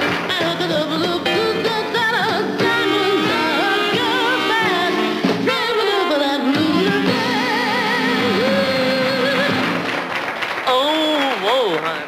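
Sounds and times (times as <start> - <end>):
instrumental accompaniment: 0.0 - 10.2.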